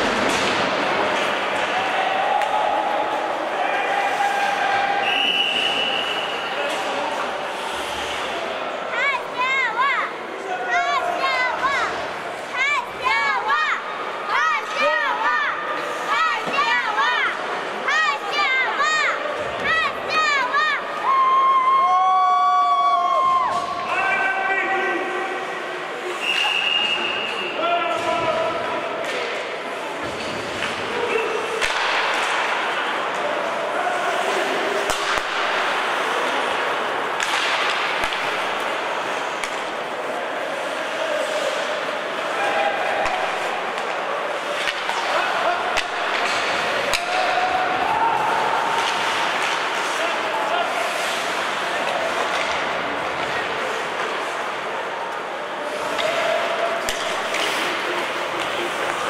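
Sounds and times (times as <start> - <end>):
hockey sticks and puck clacking: 0.0 - 10.0, 11.2 - 21.0, 28.0 - 59.0
people shouting in hall: 1.5 - 6.0, 9.0 - 25.5, 32.5 - 35.3, 40.6 - 51.2, 55.6 - 57.4
skates hissing on ice: 7.4 - 8.6, 49.0 - 52.2.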